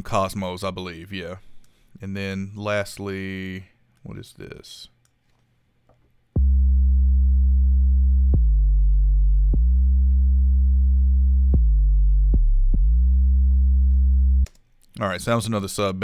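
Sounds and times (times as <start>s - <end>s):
deep sustained sub bass notes: 6.4s - 14.5s.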